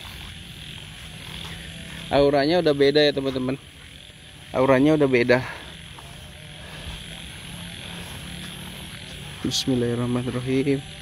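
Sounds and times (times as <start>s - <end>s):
frogs croaking: 0.0s - 11.0s
insects droning: 0.0s - 11.0s.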